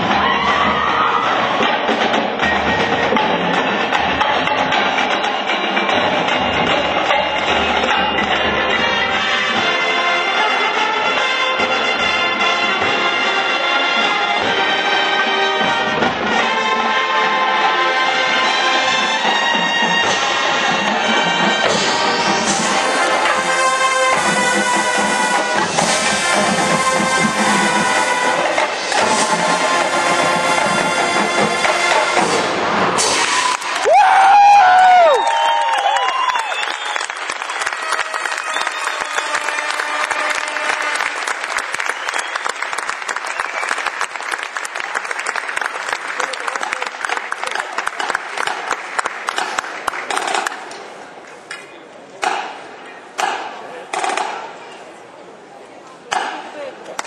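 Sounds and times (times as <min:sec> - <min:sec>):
people shouting: 0:00.0 - 0:01.7
audience applause and cheering: 0:00.0 - 0:02.1, 0:15.4 - 0:51.2
marching band brass and drums: 0:00.0 - 0:51.2.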